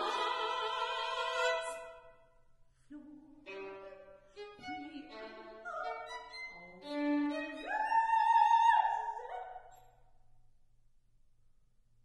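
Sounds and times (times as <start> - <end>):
violin notes: 3.0 - 9.2.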